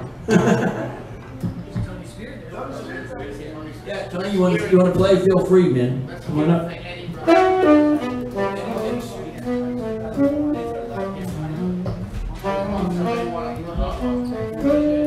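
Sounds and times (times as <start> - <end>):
jazz horn melody: 7.1 - 15.0.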